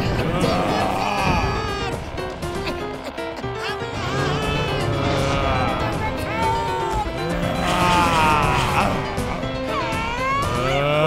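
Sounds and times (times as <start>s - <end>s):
background music: 0.0s - 11.0s
deep wordless cartoon cry: 0.0s - 11.0s.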